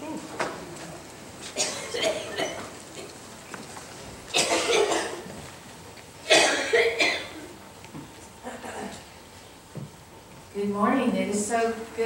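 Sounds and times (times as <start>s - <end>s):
person coughing: 1.6s - 3.1s, 4.3s - 5.3s, 6.3s - 7.5s.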